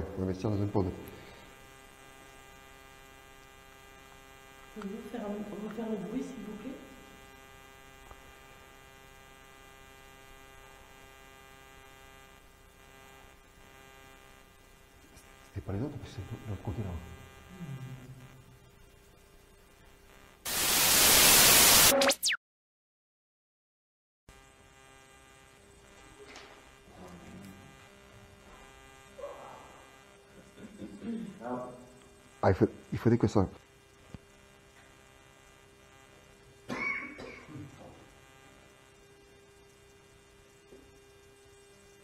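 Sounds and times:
faint electrical hum: 0.0s - 21.9s, 24.3s - 42.0s
burst of white-noise static: 0.0s - 22.4s, 24.3s - 42.0s.

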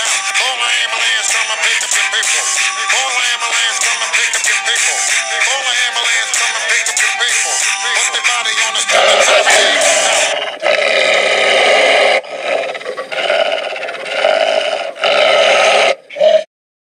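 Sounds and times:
music: 0.0s - 10.3s
wolves growling: 8.8s - 16.5s.

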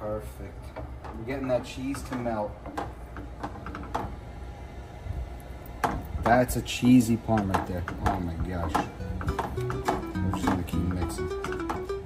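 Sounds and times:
low steady rumble: 0.0s - 12.0s
wooden spoon stirring thick sauce: 0.7s - 4.2s, 7.1s - 11.9s.

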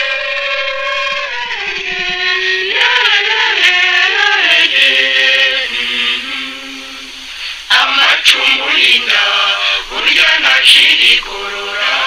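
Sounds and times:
musical backing: 0.0s - 12.0s
person singing: 0.0s - 12.0s.

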